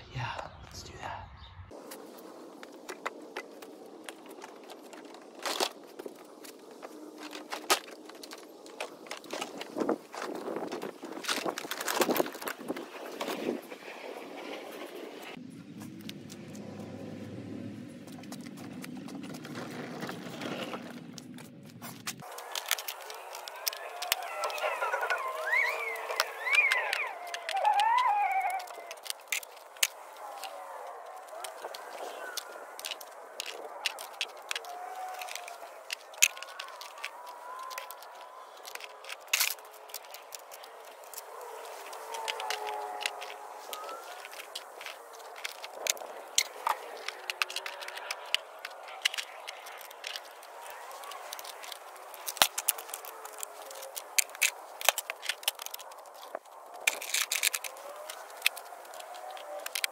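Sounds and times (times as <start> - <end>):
hand tools clicking and clinking: 20.8 - 59.9
wavering rising and falling tones: 22.2 - 39.0.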